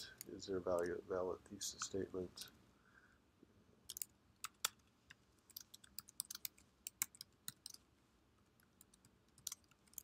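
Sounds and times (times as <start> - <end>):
typing on computer keyboard: 5.5 - 7.8, 8.8 - 10.0.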